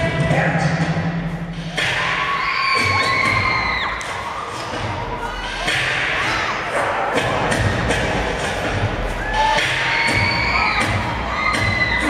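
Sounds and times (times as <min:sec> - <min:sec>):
low thumping beat: 0:00.0 - 0:12.0
crowd cheering and screaming: 0:01.8 - 0:07.0, 0:09.0 - 0:12.0.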